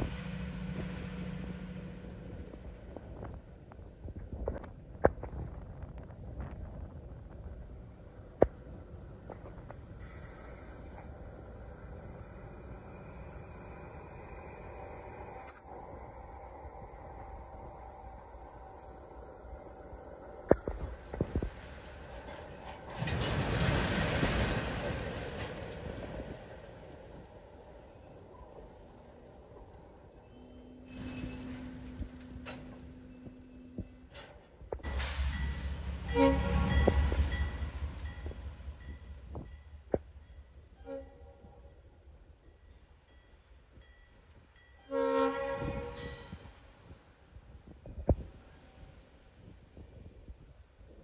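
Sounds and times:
freight train rumbling on rails: 0:00.0 - 0:51.0
locomotive air horn blast: 0:36.0 - 0:37.0, 0:44.9 - 0:46.4.

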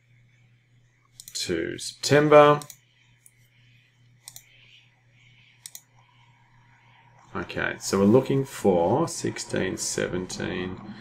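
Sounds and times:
computer mouse clicks: 0:01.1 - 0:01.4, 0:02.6 - 0:03.4, 0:04.2 - 0:04.6, 0:05.6 - 0:06.1.

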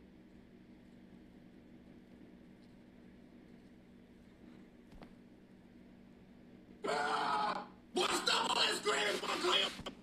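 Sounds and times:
pained vocal wail: 0:06.8 - 0:08.5.

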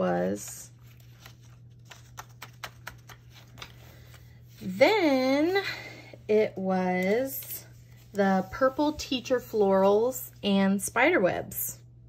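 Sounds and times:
page turning: 0:00.7 - 0:04.8.

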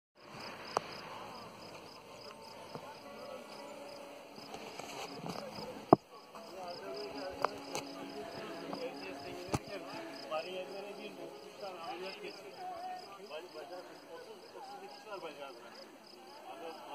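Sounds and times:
insects chirping: 0:00.2 - 0:16.9.

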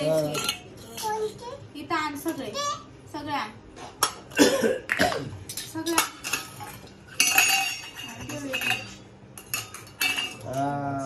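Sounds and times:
metal plates clattering on floor: 0:05.5 - 0:10.8.

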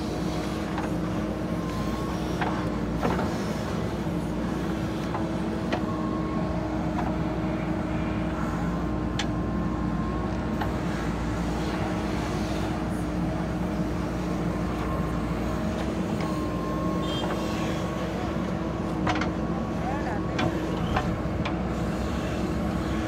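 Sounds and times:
diesel engine running under load: 0:00.0 - 0:23.0.

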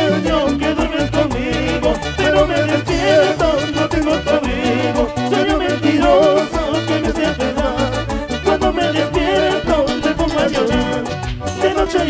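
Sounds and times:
high percussion strokes: 0:00.0 - 0:12.0
keyboard and guitar melody: 0:00.0 - 0:12.0
people singing: 0:00.0 - 0:12.0
pulsing bass line: 0:00.0 - 0:12.0.

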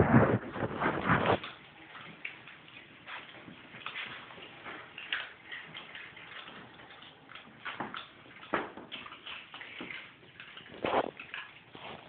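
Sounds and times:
animals crunching kibble: 0:00.0 - 0:12.0.

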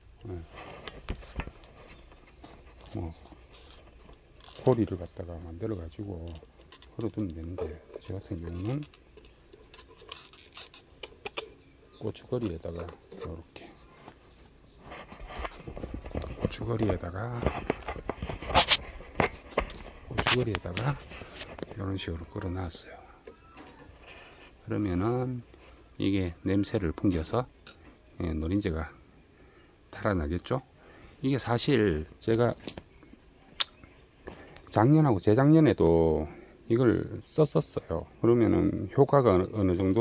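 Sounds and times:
light rustling: 0:00.3 - 0:22.6
handling clicks and knocks: 0:00.8 - 0:13.4.

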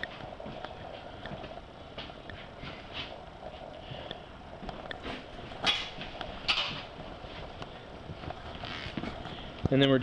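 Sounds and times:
footsteps: 0:00.0 - 0:10.0.

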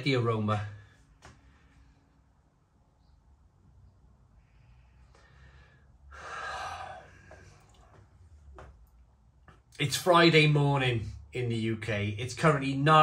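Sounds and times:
breathy exhale: 0:04.4 - 0:07.7.

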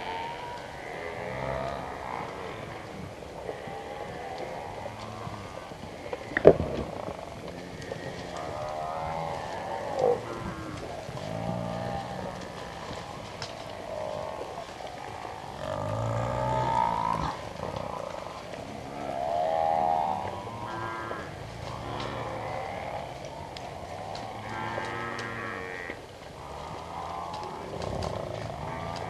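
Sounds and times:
buffalo lowing and bellowing: 0:00.0 - 0:29.0.

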